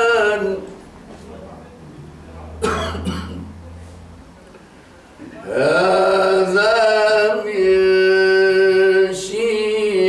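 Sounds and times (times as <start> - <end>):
low steady hum: 0.0 - 9.1
man coughing: 2.5 - 3.5.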